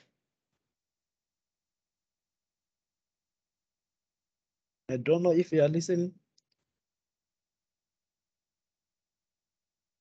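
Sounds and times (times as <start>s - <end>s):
faint small clicks: 6.3s - 6.7s.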